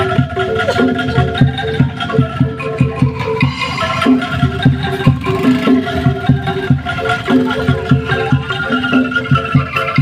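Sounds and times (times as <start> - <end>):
angklung tuned notes: 0.0 - 10.0
steady low drum beat: 0.0 - 10.0.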